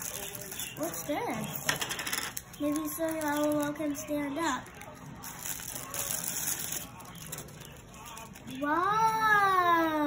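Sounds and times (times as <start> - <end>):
plastic wrapping crinkling: 0.0 - 8.7.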